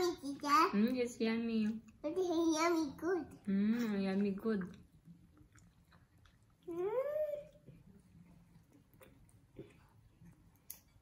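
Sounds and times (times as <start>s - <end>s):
faint chewing: 3.2s - 11.0s.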